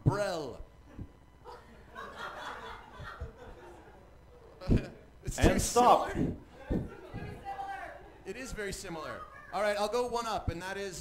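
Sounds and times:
murmured talk: 0:03.0 - 0:09.6.

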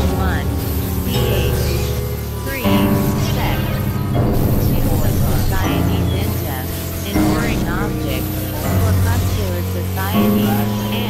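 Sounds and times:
low synthesizer drones: 0:00.0 - 0:11.0
warbling gliding synth tones: 0:00.0 - 0:11.0.

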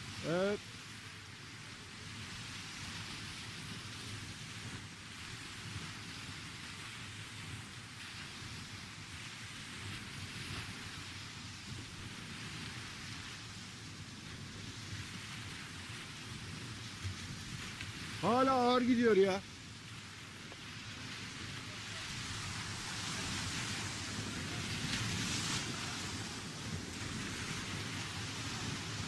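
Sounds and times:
even hiss: 0:00.0 - 0:00.6, 0:17.7 - 0:29.0.

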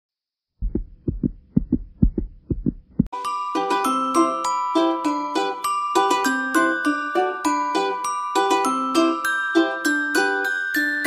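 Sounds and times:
heartbeat double thump: 0:00.6 - 0:03.1
music: 0:03.1 - 0:11.0.

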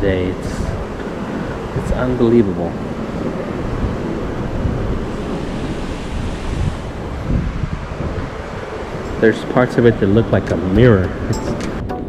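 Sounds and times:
steady rush of air and sea: 0:00.0 - 0:12.0
wind rumbling on microphone: 0:00.0 - 0:12.0.

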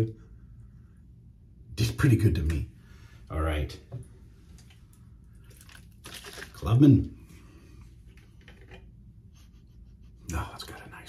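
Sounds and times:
soft clicks and rustles: 0:03.9 - 0:06.5.

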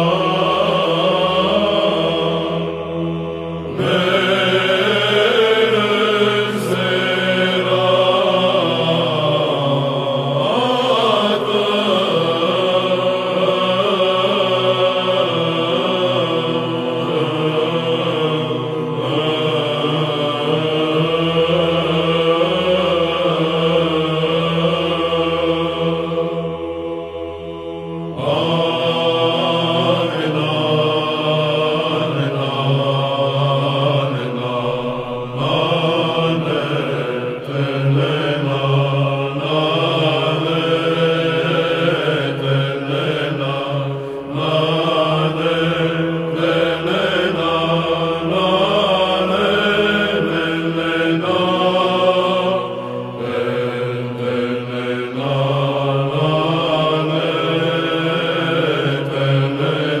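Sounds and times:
choir chanting melody: 0:00.0 - 1:00.0
held vocal drone: 0:00.0 - 1:00.0.

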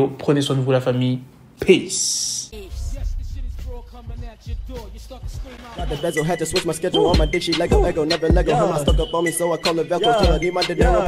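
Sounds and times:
man rapping over a beat: 0:02.4 - 0:11.0.

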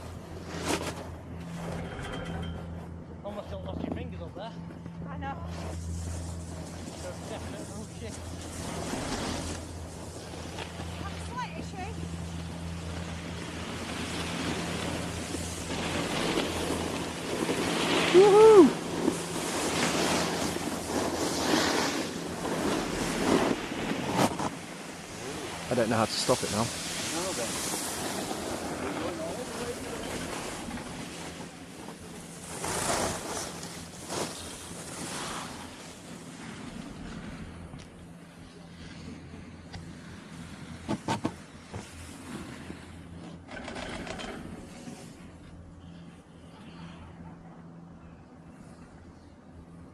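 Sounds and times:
snowboard edges scraping snow: 0:00.0 - 0:02.5, 0:05.4 - 0:37.7, 0:38.9 - 0:45.6
low hum: 0:00.0 - 0:40.8.

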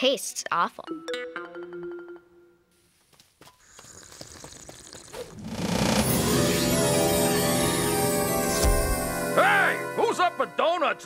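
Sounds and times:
shimmering magic spell tones: 0:06.0 - 0:11.0.

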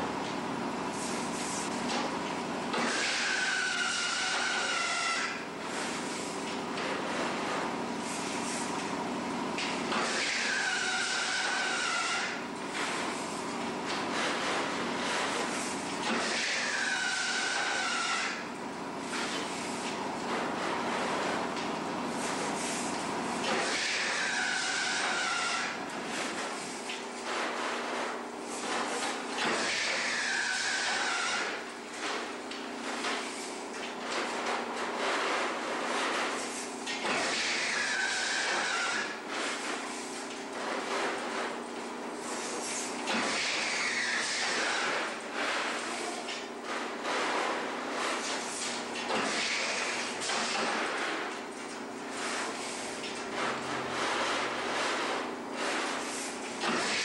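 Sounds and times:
loom mechanical clatter and hum: 0:00.0 - 0:57.0.

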